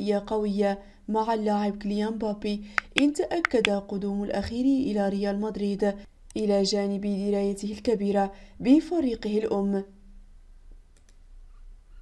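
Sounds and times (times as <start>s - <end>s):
low steady hum: 0.0s - 10.9s.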